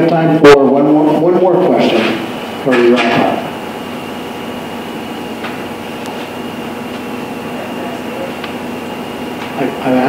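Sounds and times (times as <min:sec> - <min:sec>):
room hiss and hum: 0:00.0 - 0:10.0
thin high whine: 0:00.3 - 0:10.0.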